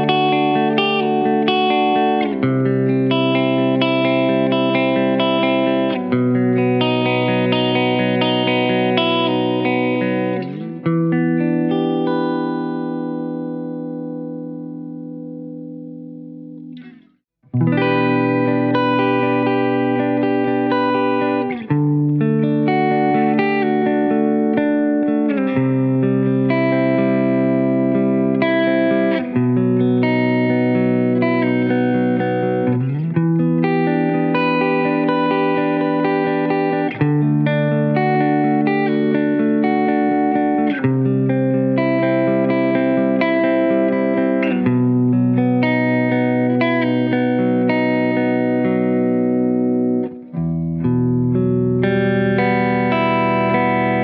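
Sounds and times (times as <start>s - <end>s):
clean electric guitar chords: 0.0s - 54.0s.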